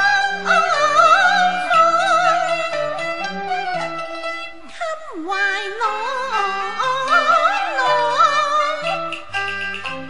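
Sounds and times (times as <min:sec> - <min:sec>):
opera singing voice: 0:00.0 - 0:03.0, 0:04.7 - 0:09.2
instrumental accompaniment: 0:00.0 - 0:10.0.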